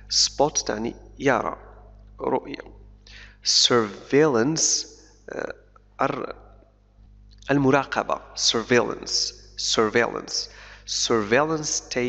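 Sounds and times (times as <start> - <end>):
man saying uh: 0.0 - 1.6, 3.5 - 6.3, 7.5 - 12.0.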